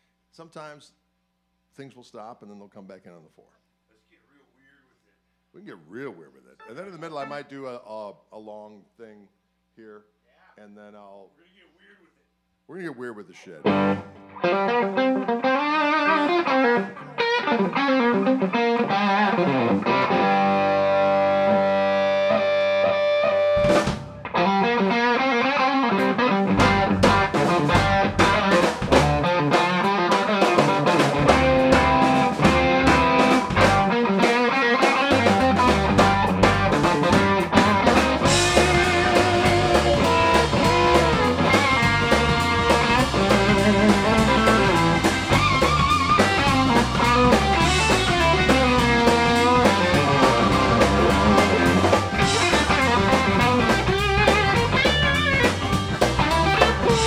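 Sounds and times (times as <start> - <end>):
distorted electric guitar: 13.6 - 57.0
drum kit: 13.6 - 57.0
organ: 13.6 - 57.0
electric bass: 13.7 - 57.0.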